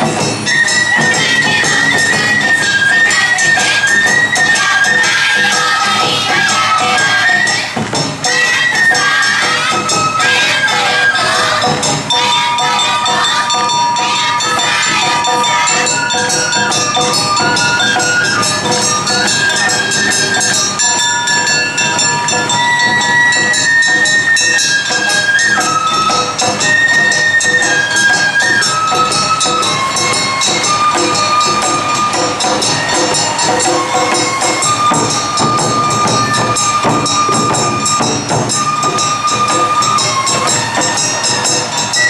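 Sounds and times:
bamboo flute notes: 0:00.0 - 0:42.0
drum beats: 0:00.0 - 0:42.0
metal gongs clanging: 0:00.0 - 0:42.0.

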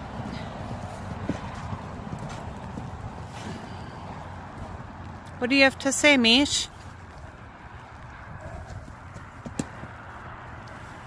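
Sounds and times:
horse hooves striking footing: 0:00.0 - 0:11.0.

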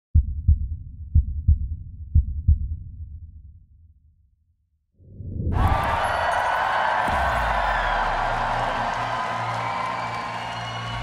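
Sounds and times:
heartbeat thumps: 0:00.2 - 0:03.2.

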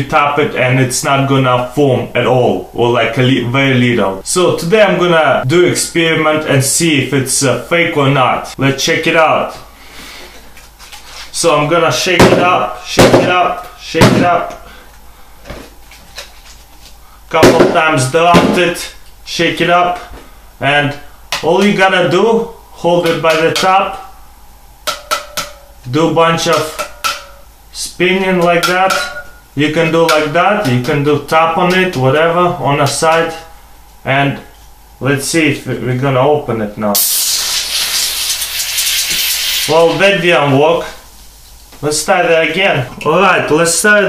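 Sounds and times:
foam hissing from can: 0:37.0 - 0:40.0.

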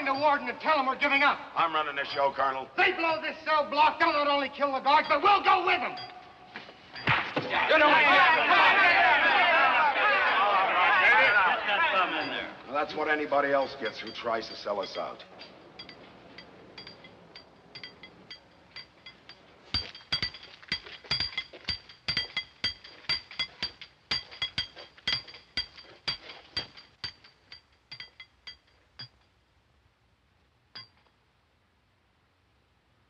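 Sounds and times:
hammer striking steel chisel on stone: 0:00.0 - 0:01.2, 0:04.0 - 0:07.4, 0:12.2 - 0:29.3, 0:30.8 - 0:31.1.

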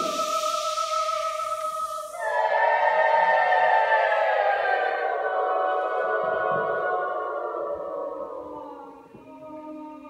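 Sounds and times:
mixed choir holding a chord: 0:00.0 - 0:09.2.

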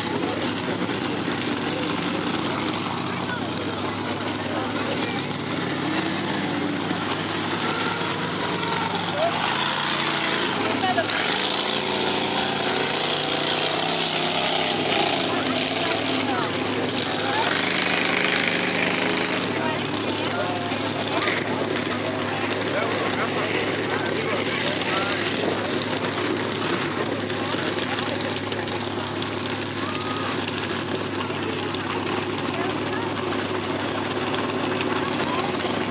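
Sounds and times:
truck engines running: 0:00.0 - 0:35.9.

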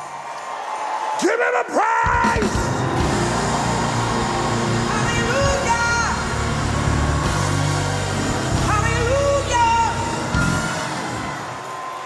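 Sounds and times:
church band playing: 0:02.0 - 0:12.0.

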